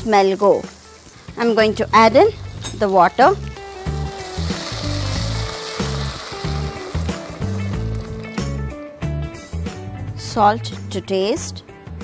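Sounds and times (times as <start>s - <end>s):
water sizzling in hot pot: 0.0s - 8.8s
background music with bass line: 1.2s - 12.0s.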